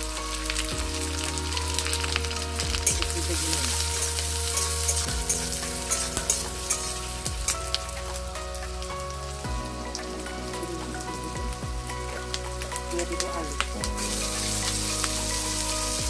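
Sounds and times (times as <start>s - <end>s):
onions sizzling in hot oil: 0.0s - 16.0s.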